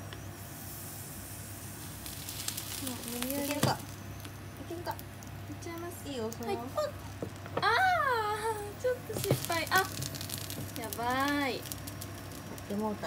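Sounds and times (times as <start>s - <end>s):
egg sizzling in a pan: 0.3s - 13.0s.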